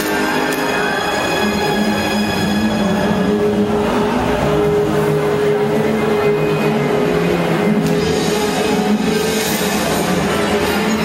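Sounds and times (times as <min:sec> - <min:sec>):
droning backing track: 0:00.0 - 0:11.0.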